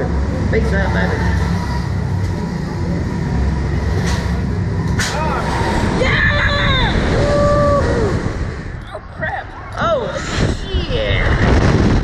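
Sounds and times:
steady low rumble: 0:00.0 - 0:12.0
sudden rushing burst: 0:10.0 - 0:12.0.

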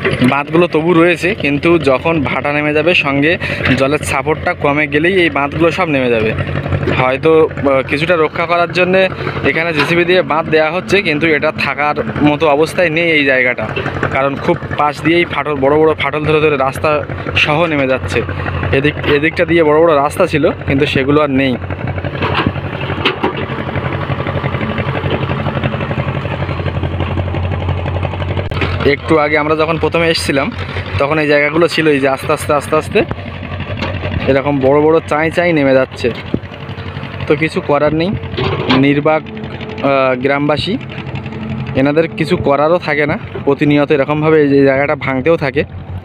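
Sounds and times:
low engine hum: 0:00.0 - 0:46.0
person speaking: 0:00.2 - 0:21.6, 0:37.2 - 0:45.7.

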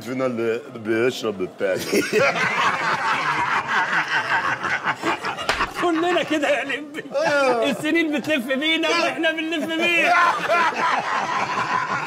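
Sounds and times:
men laughing loudly: 0:01.8 - 0:07.8, 0:09.6 - 0:12.0.

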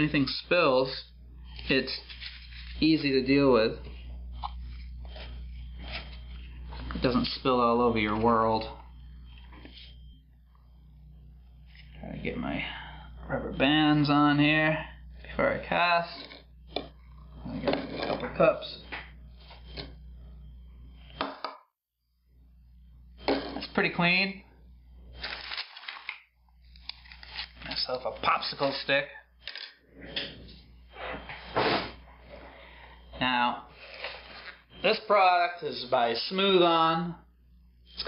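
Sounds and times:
steady low hum: 0:00.0 - 0:38.0.

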